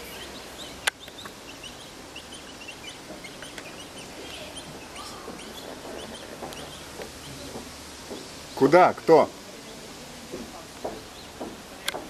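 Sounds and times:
city and river background hum: 0:00.0 - 0:12.0.

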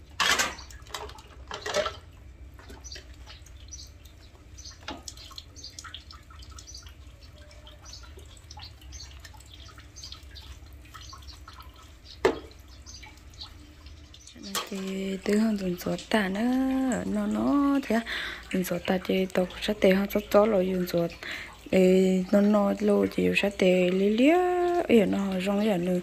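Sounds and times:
water sloshing and dripping: 0:00.0 - 0:26.0
dishes clattering: 0:00.2 - 0:02.1.

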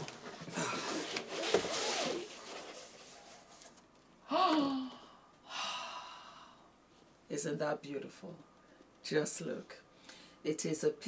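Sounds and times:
cardboard box rustling and scraping: 0:00.1 - 0:03.8
woman gasping ooh: 0:04.3 - 0:06.6
breathy sigh: 0:04.3 - 0:06.7.

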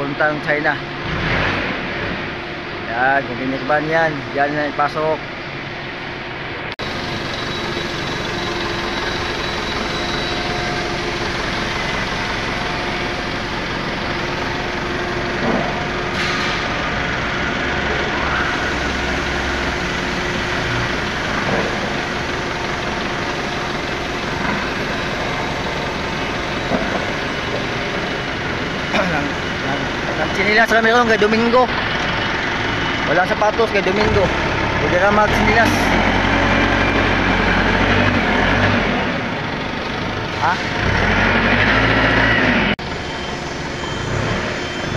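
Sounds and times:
forklift engine running: 0:00.0 - 0:44.9
low hum: 0:05.2 - 0:33.1.

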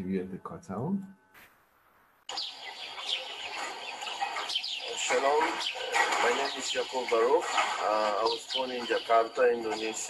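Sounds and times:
open-air background noise: 0:02.3 - 0:10.0
small birds chirping: 0:02.3 - 0:10.0.

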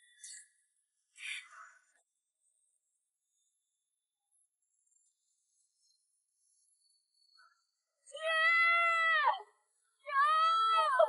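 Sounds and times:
boy shouting: 0:08.2 - 0:09.5, 0:10.1 - 0:11.0.

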